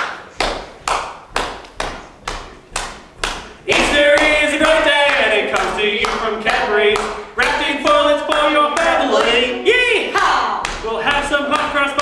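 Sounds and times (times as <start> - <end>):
hand claps: 0.0 - 9.4, 10.6 - 12.0
voices singing: 3.5 - 12.0.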